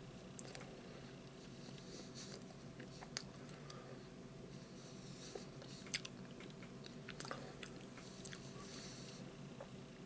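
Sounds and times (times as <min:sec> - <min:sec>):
biting and chewing pastry: 0:05.4 - 0:08.6.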